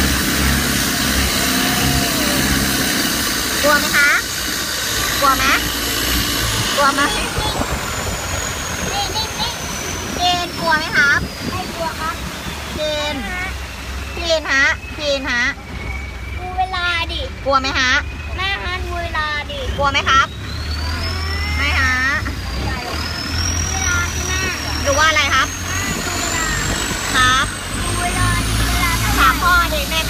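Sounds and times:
wind and water rushing: 0.0s - 16.6s, 22.3s - 30.0s
motorboat engine running: 0.0s - 30.0s.

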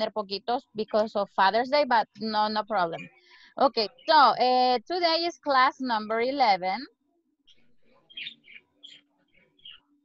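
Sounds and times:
small bird chirping: 7.5s - 10.0s.

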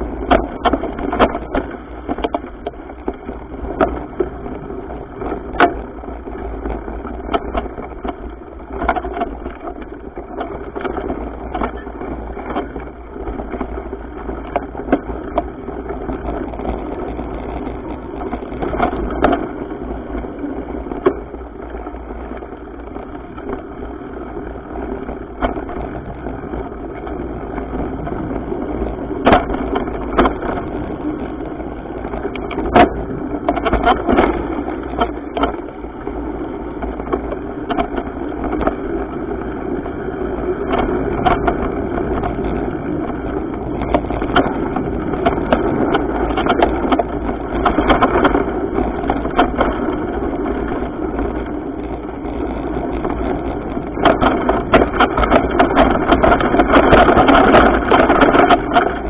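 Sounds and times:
bike rattling over bumps: 0.0s - 59.0s
bike tyres on dirt: 0.0s - 59.0s
wind on microphone: 0.0s - 59.0s.

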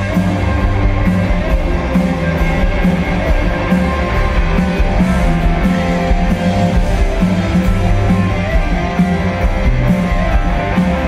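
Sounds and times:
rock band playing live: 0.0s - 11.0s.

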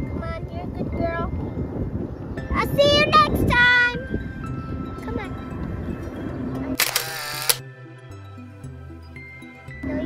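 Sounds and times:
soft background music: 0.0s - 10.0s
camera shutter clicks: 6.8s - 7.6s.

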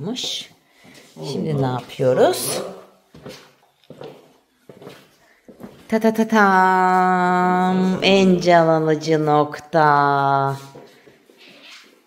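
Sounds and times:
footsteps on hard floor: 0.0s - 9.7s, 10.3s - 12.0s.

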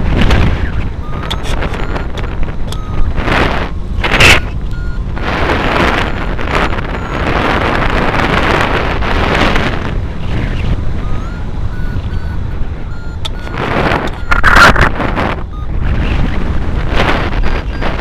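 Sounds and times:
wind rushing over microphone: 0.0s - 18.0s
short high beeps: 0.6s - 8.7s, 11.0s - 16.1s, 17.2s - 18.0s.

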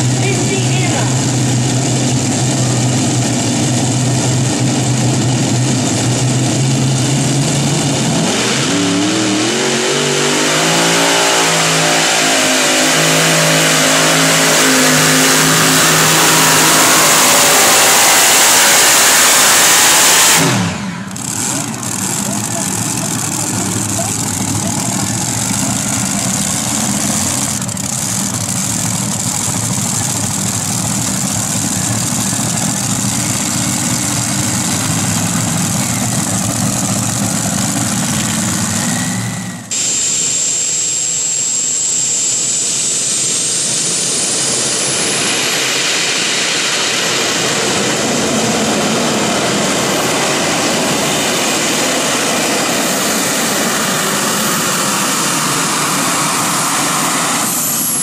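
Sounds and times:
tractor engine idling rumble: 0.0s - 8.2s, 20.7s - 40.2s
gas turbines whining: 0.0s - 58.0s.

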